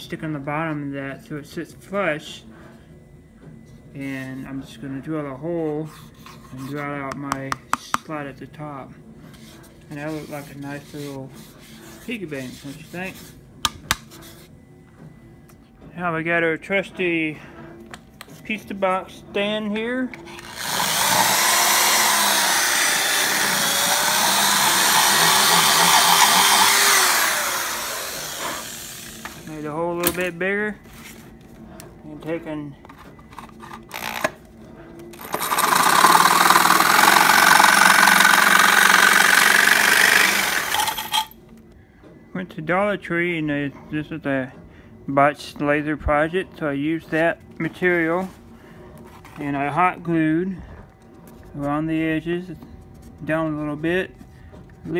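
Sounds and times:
electric jigsaw cutting bamboo: 20.4s - 29.5s, 35.2s - 41.3s.

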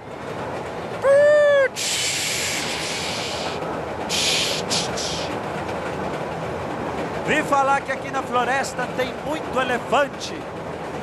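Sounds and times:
man imitating steam hiss: 1.2s - 5.4s.

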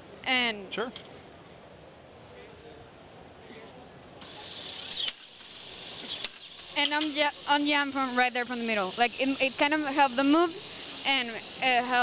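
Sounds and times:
compressed air hissing: 4.8s - 12.0s.

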